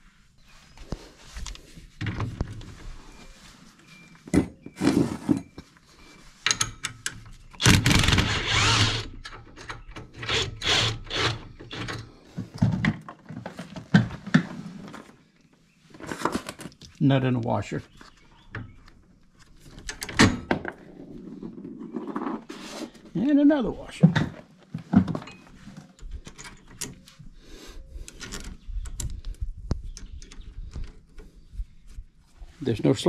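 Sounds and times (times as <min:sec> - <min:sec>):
tools and parts clanking: 0:04.3 - 0:08.2, 0:24.0 - 0:27.2.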